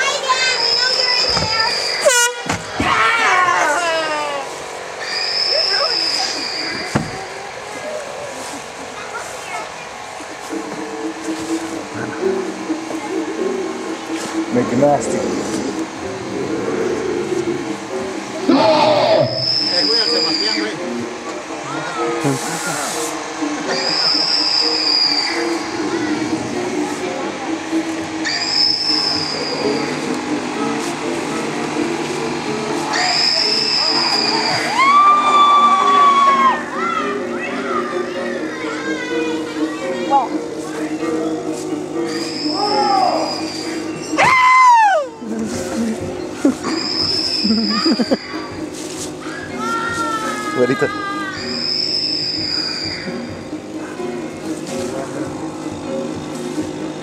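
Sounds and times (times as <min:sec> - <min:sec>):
music: 0:00.0 - 0:57.0
voices: 0:00.0 - 0:57.0
high-pitched shrieks: 0:00.3 - 0:07.0, 0:18.5 - 0:20.8, 0:23.7 - 0:26.3, 0:28.2 - 0:30.0, 0:32.9 - 0:36.8, 0:42.0 - 0:45.2, 0:46.6 - 0:48.6, 0:49.2 - 0:53.5.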